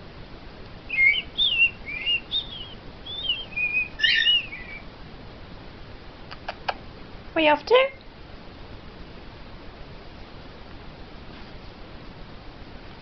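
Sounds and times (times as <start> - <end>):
cockatiel whistling: 0.9 - 4.8.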